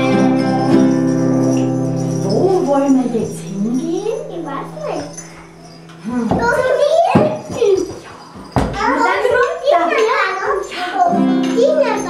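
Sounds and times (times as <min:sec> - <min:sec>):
toddlers calling: 0:00.0 - 0:12.0.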